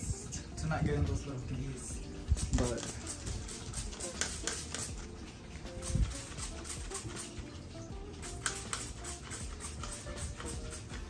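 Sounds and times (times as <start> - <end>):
background music: 0.0 - 11.0
trigger spray bottle spritzing: 2.4 - 7.5, 8.2 - 11.0.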